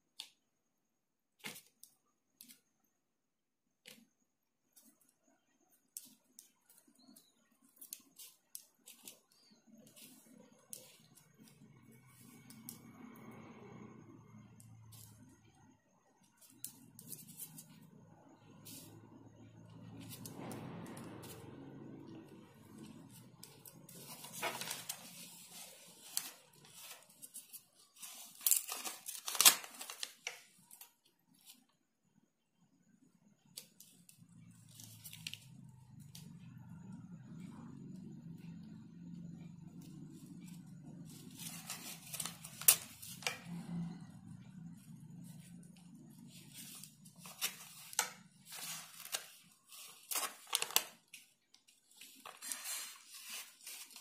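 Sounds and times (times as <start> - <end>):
paper rustling and clicking: 1.4 - 2.6, 6.0 - 12.9, 22.7 - 31.6, 41.0 - 43.4, 46.2 - 54.0
paper crinkling and crackling: 6.0 - 12.9, 19.8 - 31.6, 33.6 - 35.6, 40.2 - 43.6, 44.8 - 54.0.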